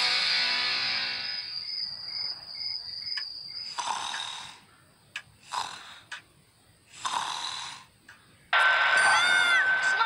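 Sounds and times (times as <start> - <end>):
cricket chirps: 0.6 - 6.9.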